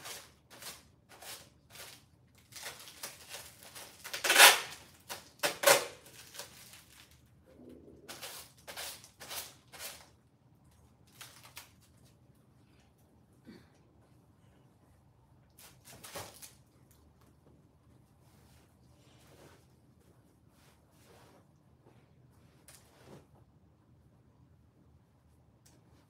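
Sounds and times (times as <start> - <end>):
clothes rustling: 17.5 - 23.5.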